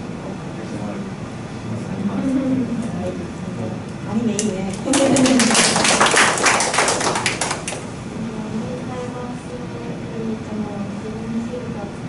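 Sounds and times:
small group clapping: 4.3 - 8.0.

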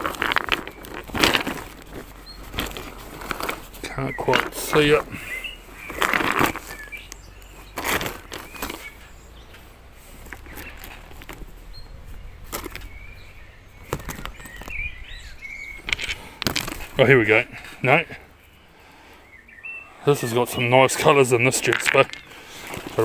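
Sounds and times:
faint bird chirps: 3.8 - 9.7, 10.4 - 16.3, 18.2 - 21.5
rock knocking and rubbing in hand: 15.7 - 17.3, 21.5 - 23.0.

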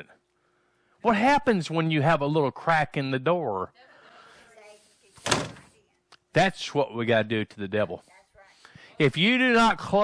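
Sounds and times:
door banging shut: 5.2 - 5.7.

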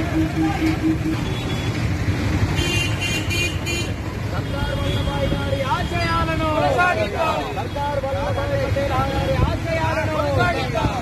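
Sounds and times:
voices: 0.0 - 1.4, 3.9 - 11.0
traffic rumble: 0.0 - 11.0.

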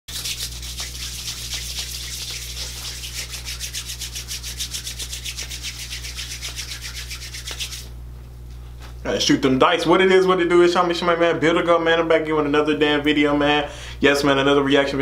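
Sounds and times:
hands rubbing together: 0.1 - 8.0.

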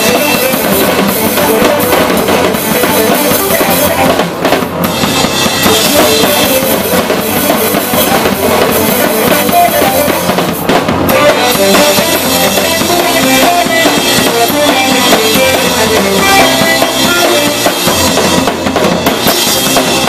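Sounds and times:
bass drum and snare beating: 0.0 - 20.0
live band playing: 0.0 - 20.0.

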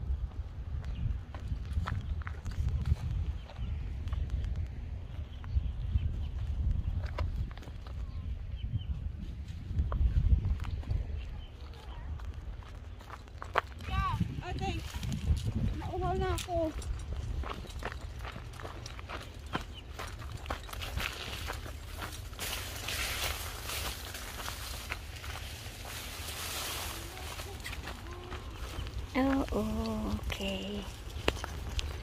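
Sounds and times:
wind rumbling on microphone: 0.0 - 32.0
footsteps through scrub: 11.6 - 32.0
rustling hiss: 22.3 - 32.0.

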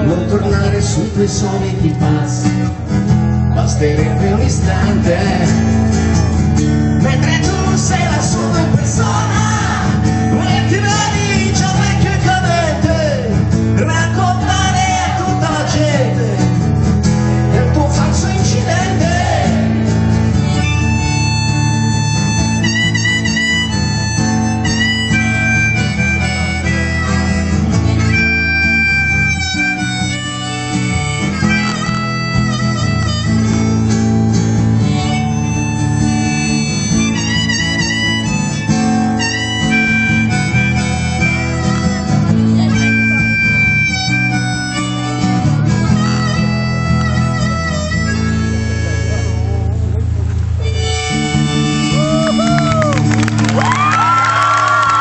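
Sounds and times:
strummed acoustic guitar: 0.0 - 53.5
bass guitar: 0.0 - 55.0
harmonica solo: 4.6 - 55.0.

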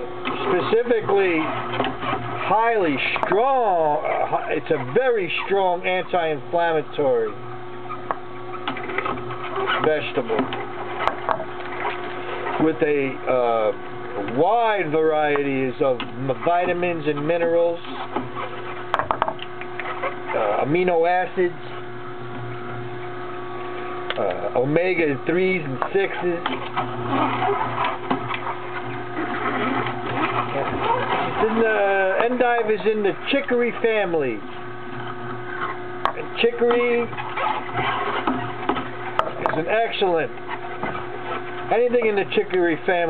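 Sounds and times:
juicer motor humming: 0.0 - 43.0
crisp crackles of vegetables grinding: 8.2 - 21.3, 23.6 - 43.0.

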